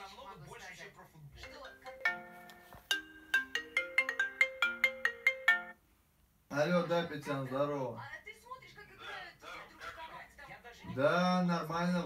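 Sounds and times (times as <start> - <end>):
smartphone ringtone: 1.4 - 5.8.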